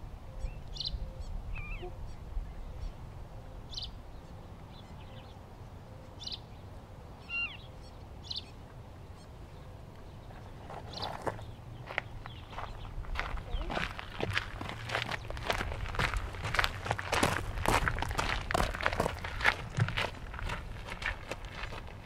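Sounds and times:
bird calls: 0:00.2 - 0:15.6
footsteps crunching on gravel: 0:10.3 - 0:22.0.

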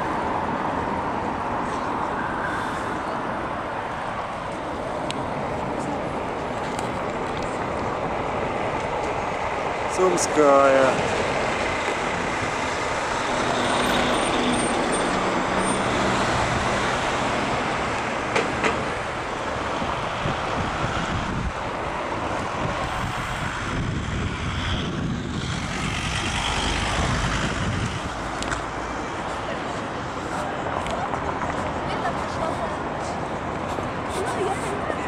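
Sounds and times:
passing cars and buses: 0:00.0 - 0:35.0.

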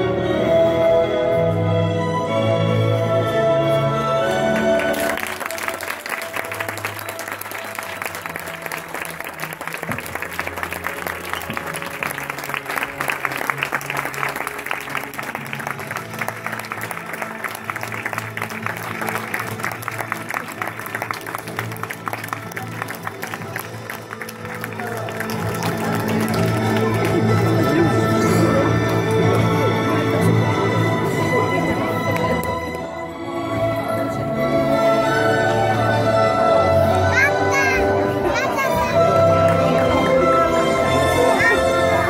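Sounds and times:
background music: 0:00.0 - 0:42.0
crowd clapping: 0:04.3 - 0:32.8, 0:37.2 - 0:42.0.

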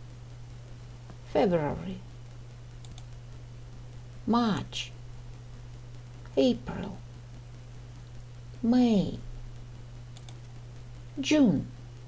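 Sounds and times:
low steady hum: 0:00.0 - 0:12.0
computer mouse clicks: 0:02.7 - 0:03.2, 0:10.1 - 0:10.6.

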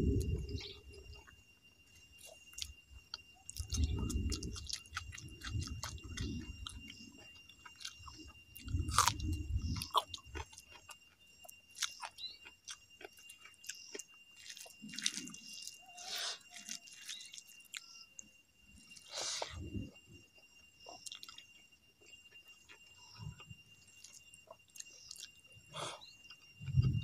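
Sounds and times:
person chewing food: 0:02.1 - 0:17.9, 0:20.9 - 0:27.0.

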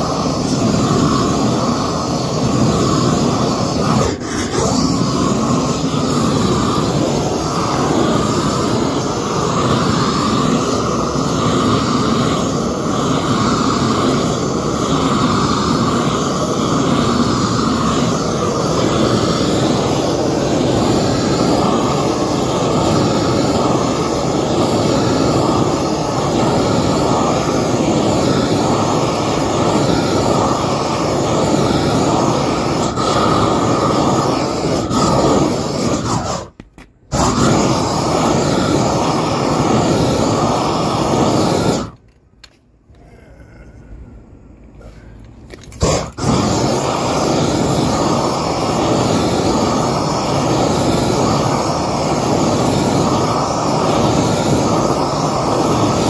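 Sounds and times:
roofing torch flame rushing: 0:00.0 - 0:42.0, 0:44.8 - 0:56.0.

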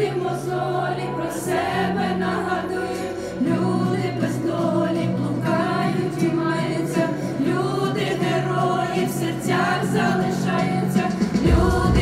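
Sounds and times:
group singing together: 0:00.0 - 0:12.0.

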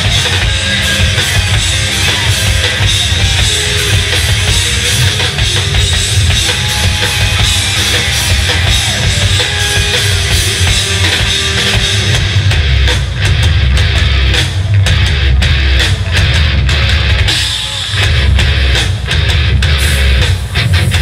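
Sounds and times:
bass guitar: 0:00.0 - 0:21.0
distorted electric guitars: 0:00.0 - 0:21.0
pounding drum kit: 0:00.0 - 0:21.0.

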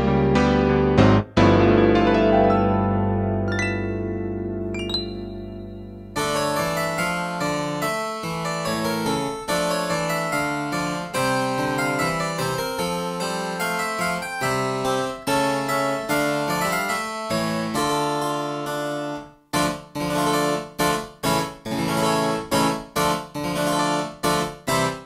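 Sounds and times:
harpsichord-voiced piano notes: 0:00.0 - 0:25.0.

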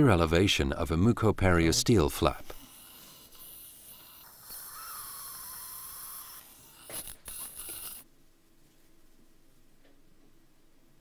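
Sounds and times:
steady hiss: 0:01.8 - 0:09.1
dental instrument clicks: 0:05.6 - 0:08.0.

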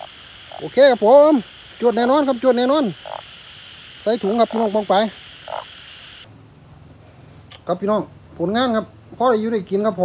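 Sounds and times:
frog croak: 0:00.0 - 0:06.3
high-pitched frog chorus: 0:00.0 - 0:06.3.

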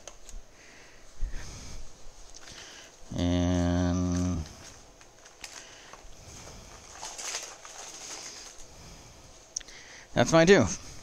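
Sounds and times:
plastic packaging crinkling: 0:04.0 - 0:08.8.

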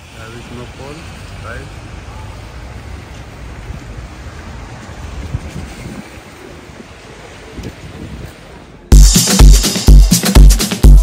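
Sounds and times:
traffic on a wet street: 0:00.0 - 0:08.9.

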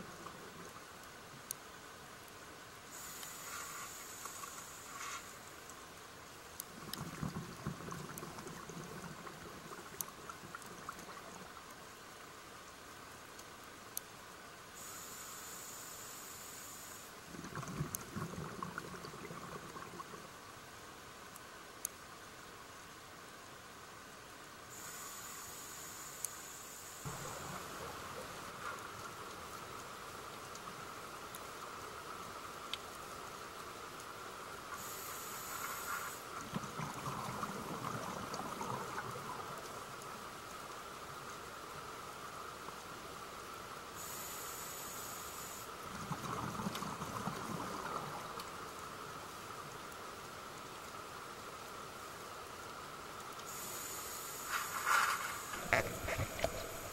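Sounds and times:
steady background hiss: 0:00.0 - 0:56.9
rumbling exhaled bubbles: 0:06.8 - 0:11.3, 0:17.3 - 0:20.2, 0:36.4 - 0:39.6, 0:45.9 - 0:48.3, 0:55.6 - 0:56.9.

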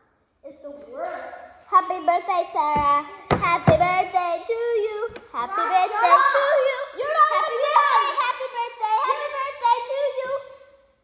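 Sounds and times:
girl singing: 0:01.8 - 0:10.8.

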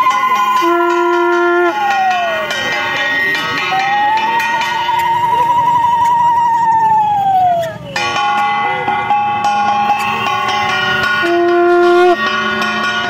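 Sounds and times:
bell strikes: 0:00.0 - 0:06.1, 0:07.6 - 0:13.0
conch shells blowing: 0:00.0 - 0:06.6, 0:07.6 - 0:12.9.

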